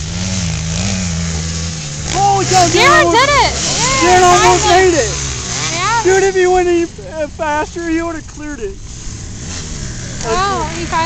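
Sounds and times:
distant dirt bike engine revving: 0.0 - 11.0.

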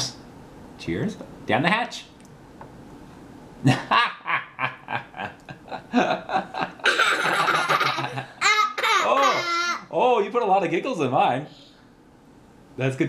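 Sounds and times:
young child laughing: 3.6 - 9.9
child squealing laugh: 6.8 - 9.9.

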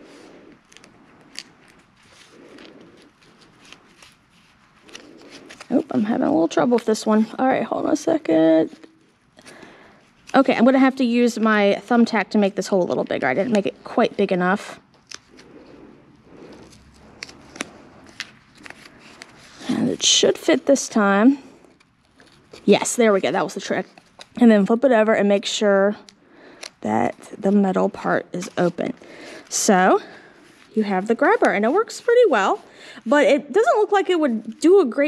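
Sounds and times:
cardboard strips rustling: 0.0 - 11.7, 12.6 - 24.8, 26.6 - 32.6.

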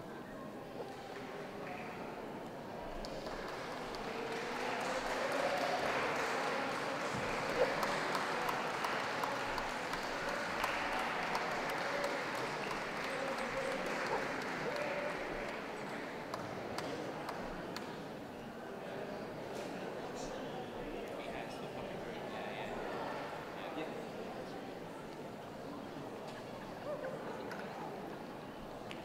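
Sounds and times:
crowd chatter: 0.0 - 29.0
audience applauding: 3.0 - 17.5.

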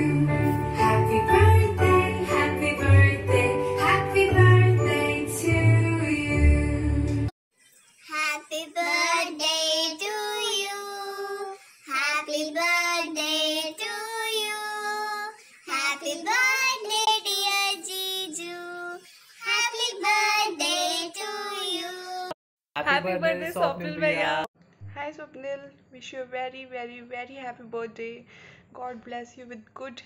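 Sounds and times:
woman singing in a high voice: 8.1 - 22.4.

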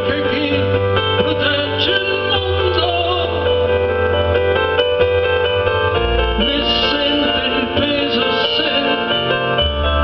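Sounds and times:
held keyboard chords: 0.0 - 10.0
progressive rock band playing: 0.0 - 10.0.

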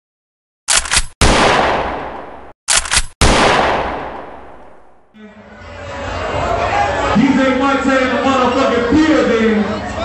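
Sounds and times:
sharp bangs: 0.7 - 5.1
booming hit with echo: 1.2 - 2.5, 3.2 - 5.0.

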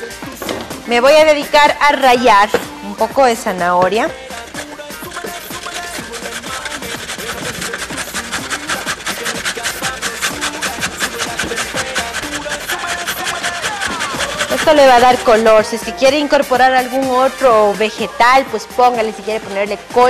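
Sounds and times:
background music: 0.0 - 20.0
carrot grating on metal grater: 3.4 - 17.5.

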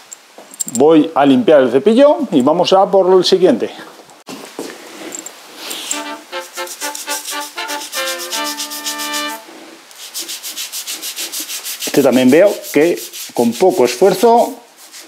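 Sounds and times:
toothbrush scrubbing tile grout: 5.8 - 15.0
brass-like musical sting: 5.9 - 9.5.

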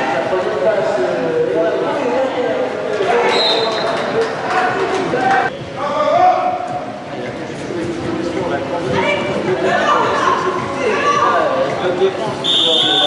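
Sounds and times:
short high whistle tone: 12.4 - 13.0.

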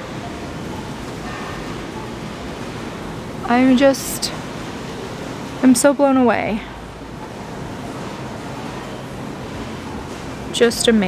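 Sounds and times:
store interior hiss: 0.0 - 11.0.

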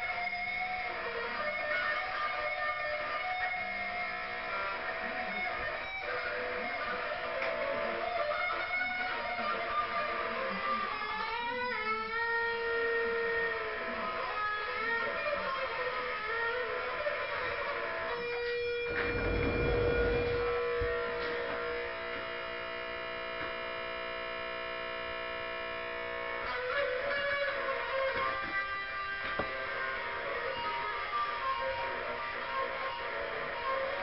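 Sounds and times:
electric guitar playing: 0.0 - 34.0
low rumble: 18.9 - 21.2.

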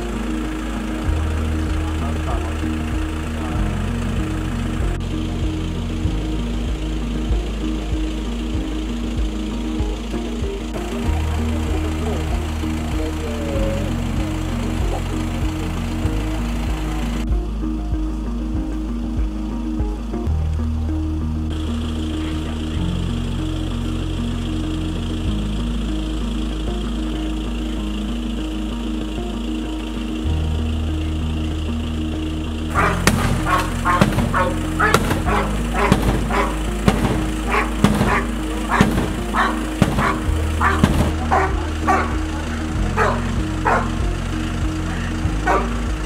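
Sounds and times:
low sustained chords: 0.0 - 46.0
dog barking: 32.8 - 36.6, 37.5 - 42.2, 43.0 - 43.9, 45.5 - 45.8.

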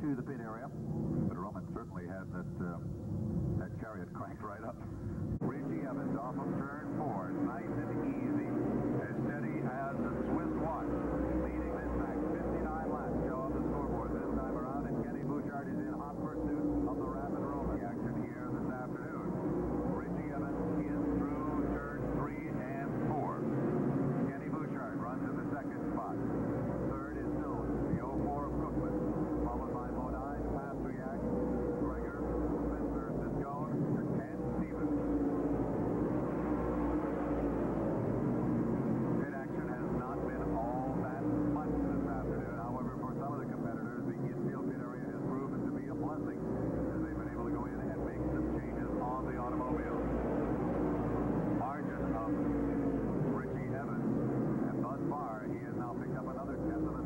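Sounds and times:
race car engines droning: 0.0 - 57.0.

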